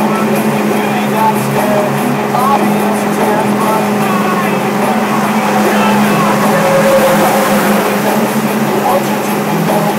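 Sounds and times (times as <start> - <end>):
car engine droning: 0.0 - 9.9
road and wind noise: 0.0 - 9.9.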